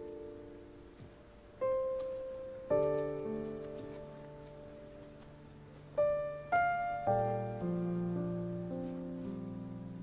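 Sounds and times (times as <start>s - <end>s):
crickets chirring: 0.0s - 10.0s
soft background music: 0.0s - 10.0s.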